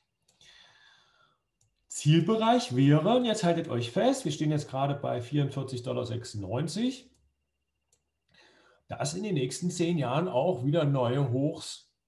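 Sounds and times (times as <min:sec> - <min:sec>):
faint breath drawn in: 0:00.4 - 0:01.5, 0:08.3 - 0:08.9.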